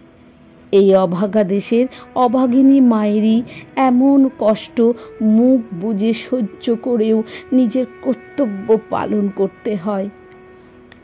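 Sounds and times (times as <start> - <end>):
soft background music with drone: 0.0 - 11.0
woman narrating: 0.7 - 10.2.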